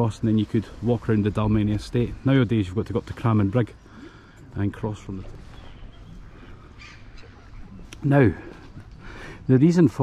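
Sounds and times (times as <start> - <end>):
outdoor background noise: 0.0 - 10.0
waterbirds calling: 0.0 - 10.0.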